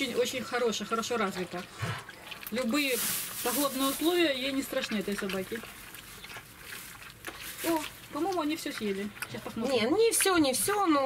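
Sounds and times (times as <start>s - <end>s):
puppies lapping food from bowl: 0.0s - 11.0s.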